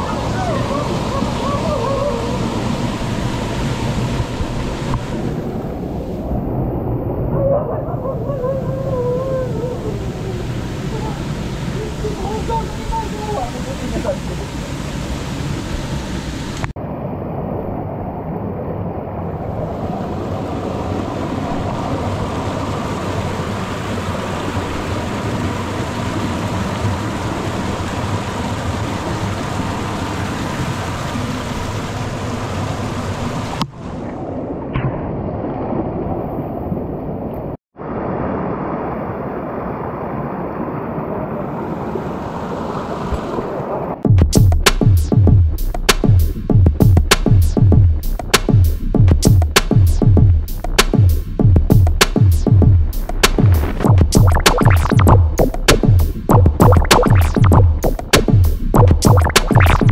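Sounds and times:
rushing stream and waterfall: 0.0s - 44.0s.

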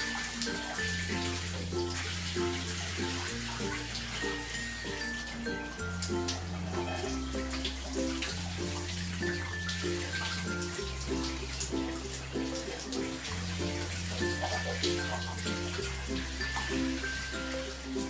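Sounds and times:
background music: 0.0s - 18.0s
shower running: 0.0s - 18.0s.

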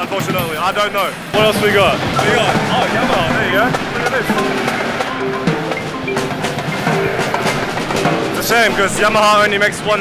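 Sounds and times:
drum strokes: 0.0s - 10.0s
marimba notes: 0.2s - 9.9s.

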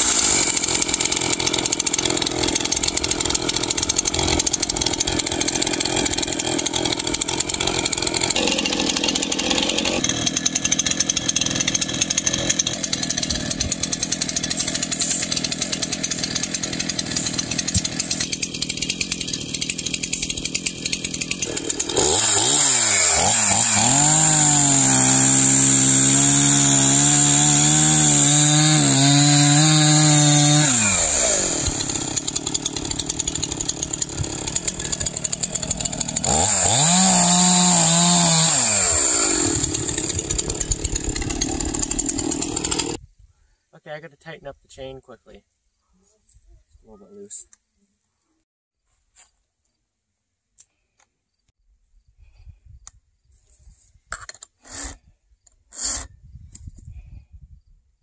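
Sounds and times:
chainsaw cutting into log: 0.0s - 43.0s, 54.6s - 55.1s, 55.7s - 56.2s
chainsaw idling: 0.0s - 43.0s.

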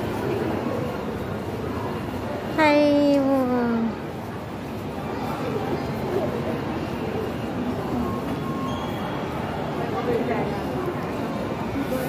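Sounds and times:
shopping mall rumble: 0.0s - 12.0s.

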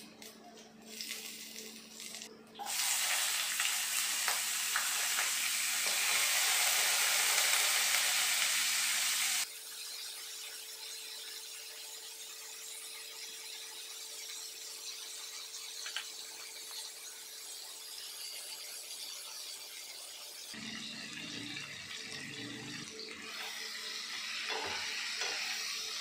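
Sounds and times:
food sizzling in hot oil: 0.9s - 26.0s.

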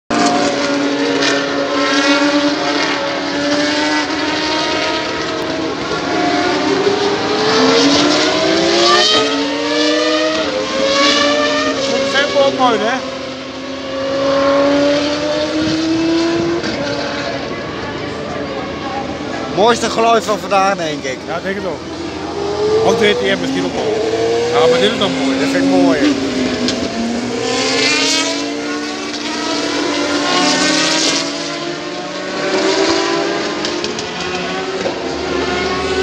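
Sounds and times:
racing car engine at high revs: 0.1s - 36.0s.

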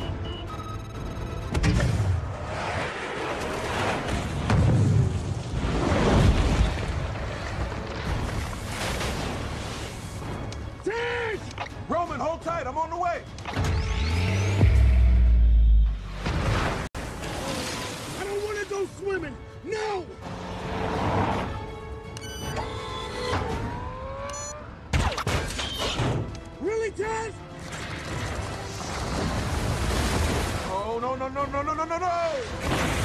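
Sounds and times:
film music: 0.0s - 5.1s, 6.6s - 33.0s.

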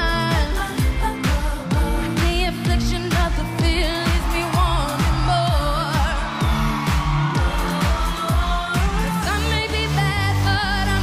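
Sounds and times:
dance-pop backing track: 0.0s - 11.0s
woman singing into microphone: 0.0s - 11.0s.

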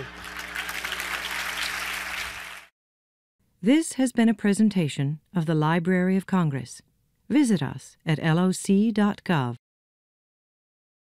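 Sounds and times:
audience applauding: 0.0s - 2.7s.

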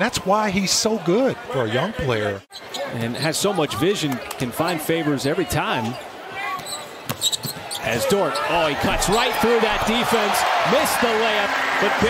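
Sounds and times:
low arena crowd noise: 0.0s - 12.0s.

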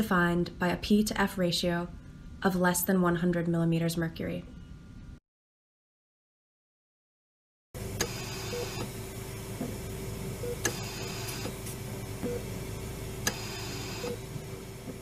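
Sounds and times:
steady equipment hum and tone: 0.0s - 5.2s, 7.8s - 15.0s
ventilator click and hiss: 8.0s - 12.5s, 13.1s - 15.0s.

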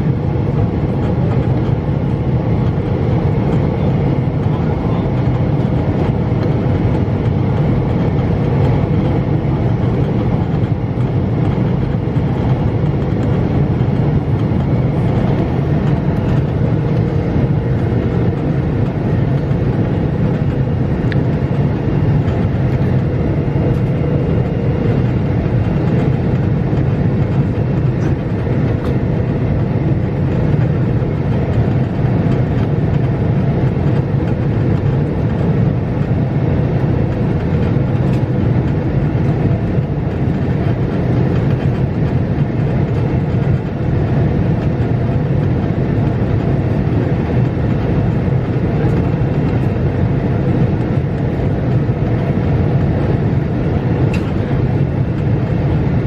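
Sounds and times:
airliner cabin engine rumble: 0.0s - 56.0s.

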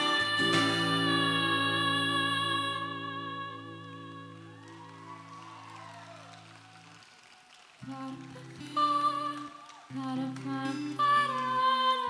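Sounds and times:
acoustic guitar notes ringing: 0.0s - 4.6s
guitar chord picked: 0.0s - 4.6s.

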